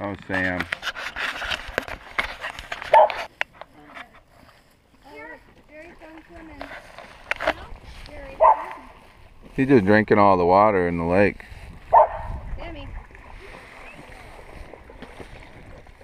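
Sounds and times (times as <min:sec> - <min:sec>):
dog barking: 0:02.9 - 0:03.3, 0:08.4 - 0:08.9, 0:11.9 - 0:12.4.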